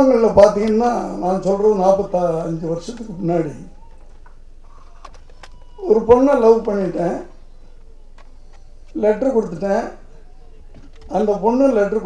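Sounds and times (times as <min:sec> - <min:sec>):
man speaking amplified: 0:00.0 - 0:03.7, 0:05.8 - 0:07.3, 0:08.9 - 0:10.4, 0:11.0 - 0:12.0.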